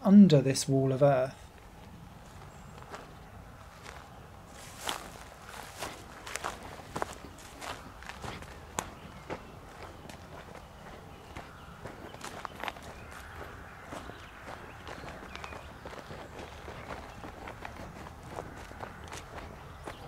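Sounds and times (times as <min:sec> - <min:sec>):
footsteps through rough grass: 0:01.5 - 0:20.0.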